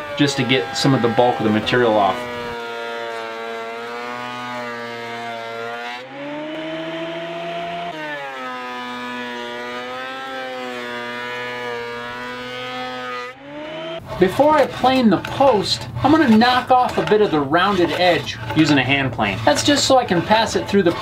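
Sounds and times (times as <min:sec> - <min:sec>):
thickness planer motor whining: 0:00.0 - 0:14.2
person speaking: 0:14.1 - 0:21.0.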